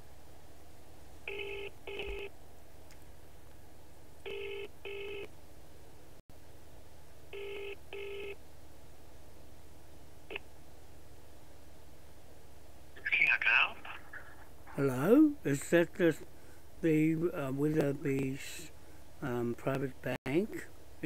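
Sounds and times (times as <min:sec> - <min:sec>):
double-ring ringback tone: 0:07.4 - 0:08.4.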